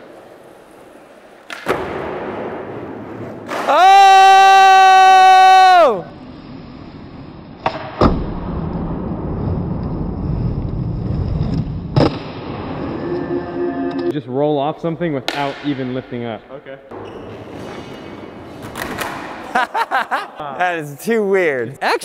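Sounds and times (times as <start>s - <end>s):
skateboard wheels rolling on concrete: 0.0s - 7.8s, 8.4s - 13.0s
loud held pitched tone: 12.5s - 14.2s.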